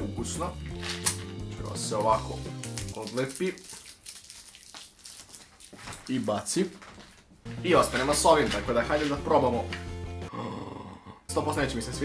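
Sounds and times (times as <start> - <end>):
plastic strip crinkling: 0.7 - 9.2.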